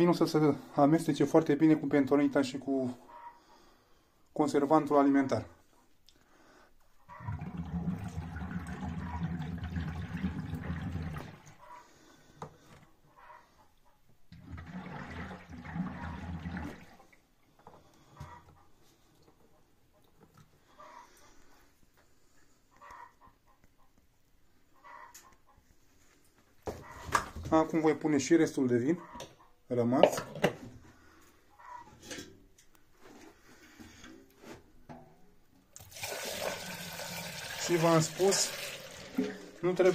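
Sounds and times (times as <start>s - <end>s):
wine bubbling and gurgling: 7.1s - 11.6s, 14.3s - 17.2s, 35.8s - 39.9s.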